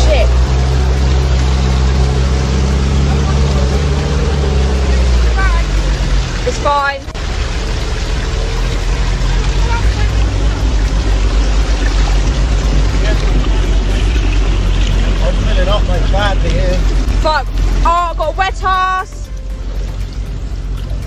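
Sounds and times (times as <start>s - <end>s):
voices calling out: 0.0s - 19.7s
rushing water: 0.0s - 21.0s
vehicle engine rumbling: 0.0s - 21.0s.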